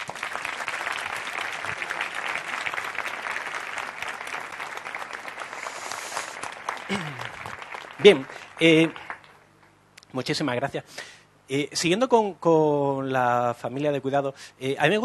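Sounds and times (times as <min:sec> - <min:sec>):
audience applauding: 0:00.0 - 0:09.4.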